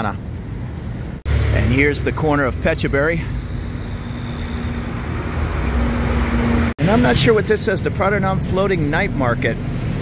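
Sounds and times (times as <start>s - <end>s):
road traffic rumble: 0.0s - 10.0s
bus driving past: 0.6s - 7.4s.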